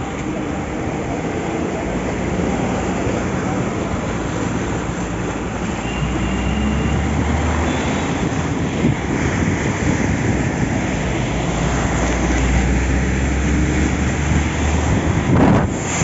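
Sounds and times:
floodwater rushing over road: 0.0 - 16.0.

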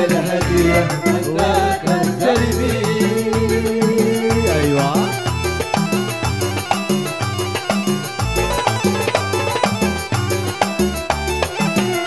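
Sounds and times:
hand drum beat: 0.0 - 12.0
live band music: 0.0 - 12.0.

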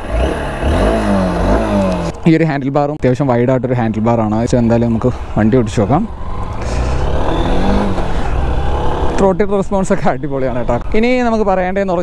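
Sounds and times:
motorcycle engine running: 0.0 - 2.2.

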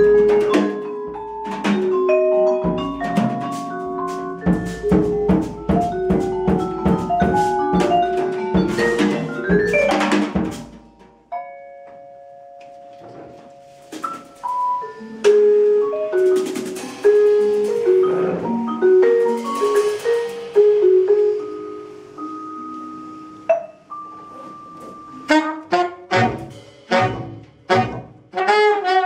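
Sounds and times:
drum kit: 0.0 - 11.4, 13.6 - 29.0
jazz band playing: 0.0 - 11.5, 12.6 - 29.0
vibraphone notes: 0.0 - 27.4.

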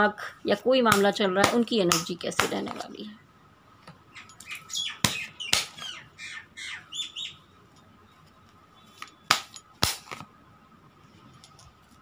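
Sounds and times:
birds chirping squawkily: 4.0 - 7.6.

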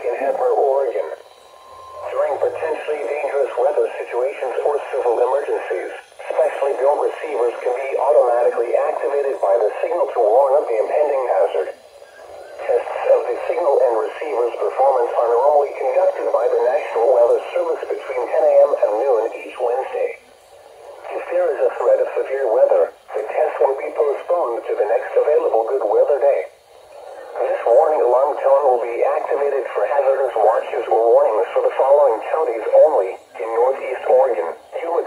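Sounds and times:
announcer voice through small speaker: 0.0 - 1.2, 2.0 - 20.2, 20.9 - 35.0.

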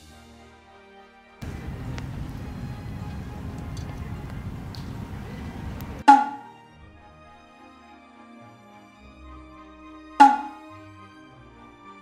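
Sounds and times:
background music: 0.0 - 12.0
low rumble: 1.4 - 6.0
fire popping: 1.4 - 6.1
small fire crackling: 1.4 - 6.1.

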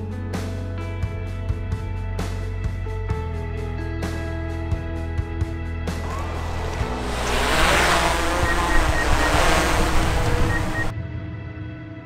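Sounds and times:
loud rushing whoosh: 6.0 - 10.9.

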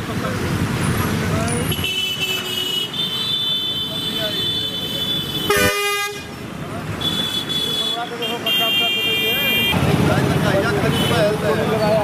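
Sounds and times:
traffic noise: 0.0 - 12.0.

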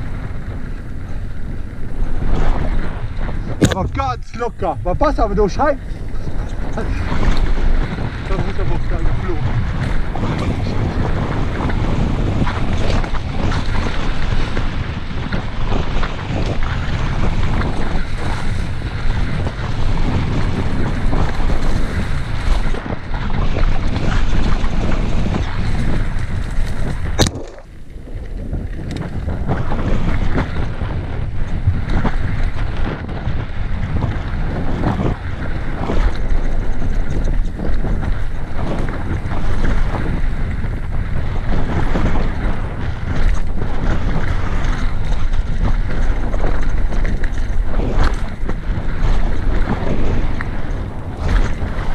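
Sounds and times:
bike knocking and rattling: 0.0 - 51.9
tyres rumbling over dirt trail: 0.0 - 51.9
wind buffeting microphone: 0.0 - 51.9.

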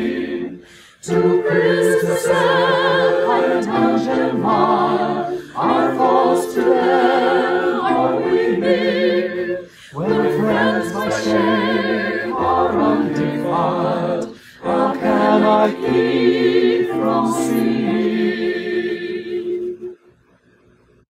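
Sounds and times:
mixed choir singing unaccompanied: 0.0 - 20.0.

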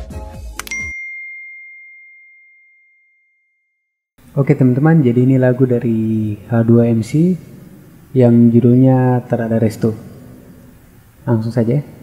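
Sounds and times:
bell-like ding: 0.7 - 3.8.

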